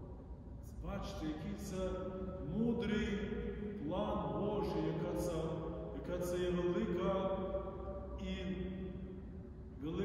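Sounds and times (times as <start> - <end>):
man speaking slowly: 0.6 - 10.0.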